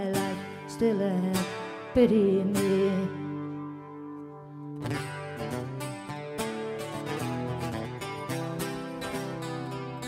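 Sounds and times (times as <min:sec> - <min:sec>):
person singing: 0:00.0 - 0:04.0
acoustic guitar strumming: 0:00.0 - 0:10.0.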